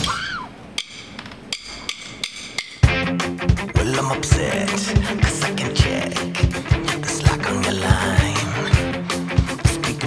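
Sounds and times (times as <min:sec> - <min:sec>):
drumsticks clicking together: 0:00.8 - 0:02.8
rock band playing loudly: 0:02.8 - 0:10.0.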